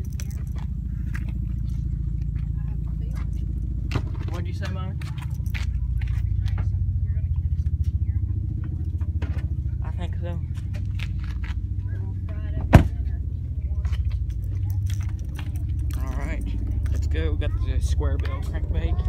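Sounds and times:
low pulsing rumble: 0.0s - 19.0s.

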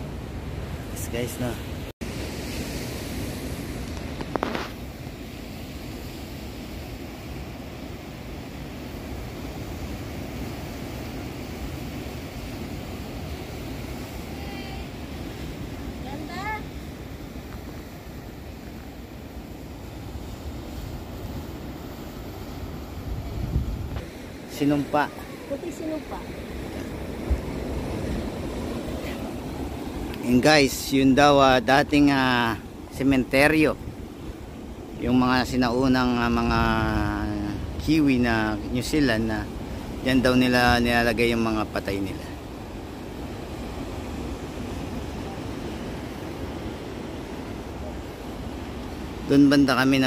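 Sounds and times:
ocean surf over rocks: 0.0s - 50.0s
wind on microphone: 2.1s - 30.3s.

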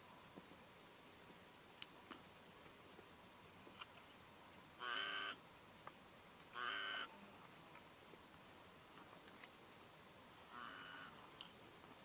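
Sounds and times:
harsh animal calls: 4.8s - 5.4s, 6.5s - 7.2s, 10.5s - 11.2s.

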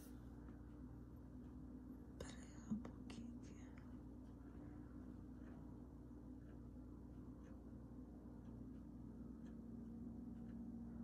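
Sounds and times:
person whispering: 2.2s - 3.9s.

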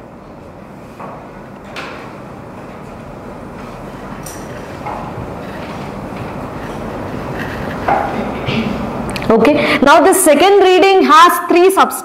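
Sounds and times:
steady rumbling noise: 2.2s - 10.6s.

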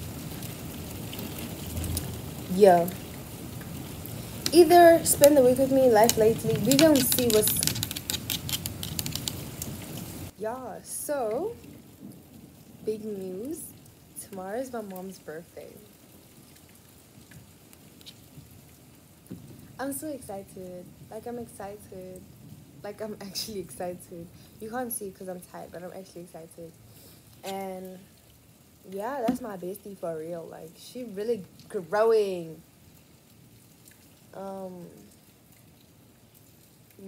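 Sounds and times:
faint steady rain: 0.0s - 37.0s
raindrop ticks: 0.0s - 37.0s.

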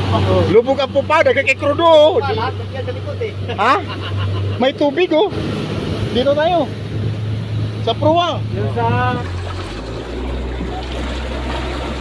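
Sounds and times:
outboard motor running: 0.0s - 12.0s.

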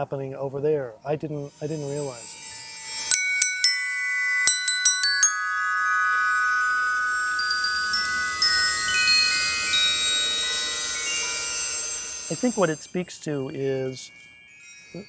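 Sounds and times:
glockenspiel notes: 1.5s - 15.0s.

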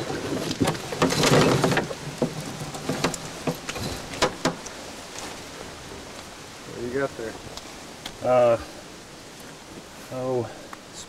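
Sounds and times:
leaves and netting crackling: 0.0s - 11.0s.

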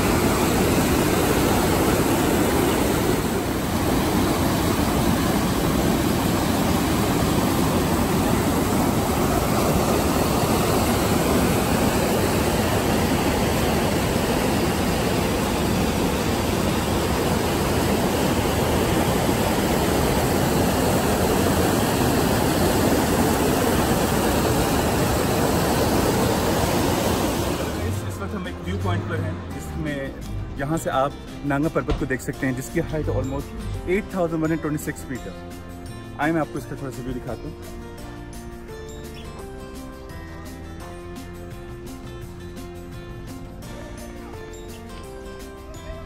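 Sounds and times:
stream rushing over boulders: 0.0s - 30.5s.

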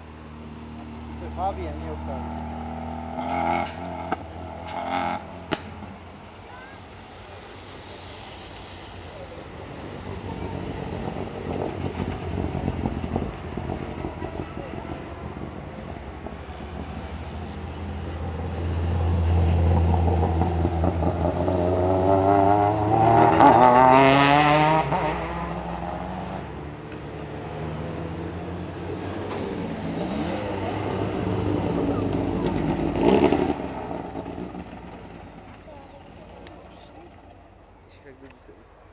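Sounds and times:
race car engines revving: 0.0s - 38.9s.

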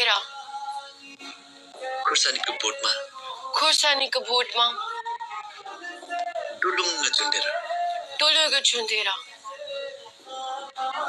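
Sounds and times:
faint steady music: 0.0s - 11.0s
man singing: 0.1s - 3.7s, 4.8s - 8.3s, 9.4s - 11.0s.

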